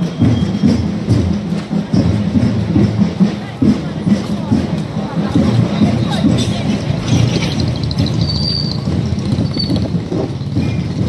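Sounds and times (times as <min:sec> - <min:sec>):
road traffic: 0:00.0 - 0:11.0.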